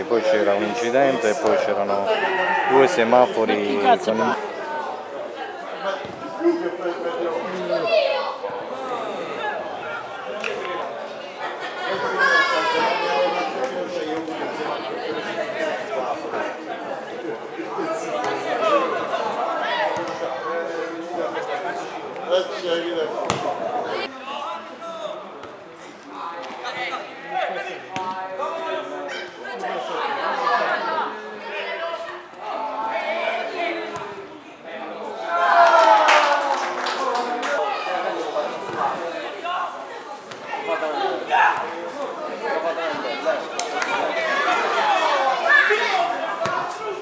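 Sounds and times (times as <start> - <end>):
many voices talking: 0.0 - 47.0
overlapping conversation: 0.0 - 47.0.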